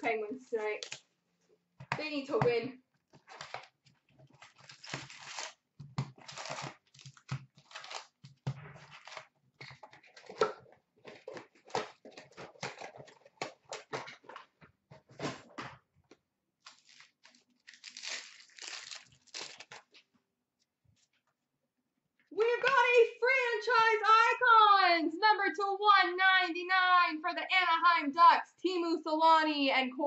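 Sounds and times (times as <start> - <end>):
foil packs crinkling: 3.2 - 10.3, 16.6 - 20.0.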